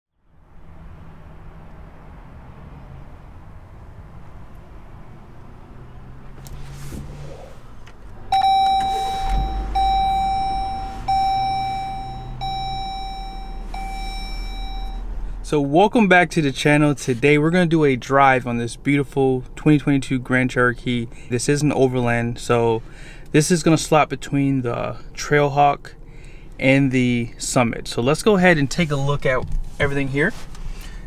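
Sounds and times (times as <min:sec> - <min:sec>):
car engine idling: 0:06.3 - 0:16.6
dashboard chime: 0:08.3 - 0:15.1.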